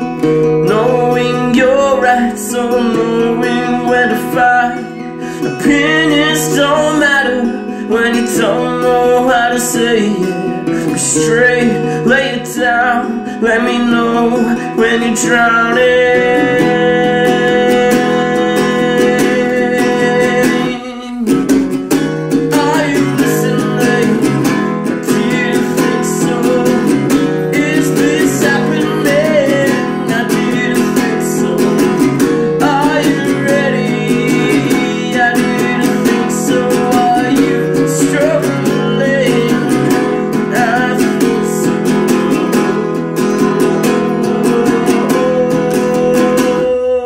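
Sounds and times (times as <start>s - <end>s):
acoustic guitar strumming: 0.0s - 47.0s
person singing: 0.0s - 47.0s.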